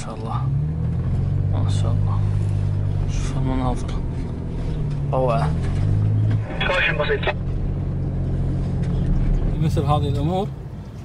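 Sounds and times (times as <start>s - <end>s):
engine drone inside vehicle: 0.0s - 11.0s.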